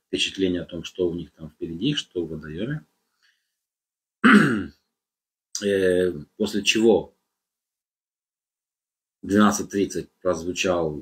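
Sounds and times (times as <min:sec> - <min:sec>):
man clearing his throat: 0:04.2 - 0:04.8.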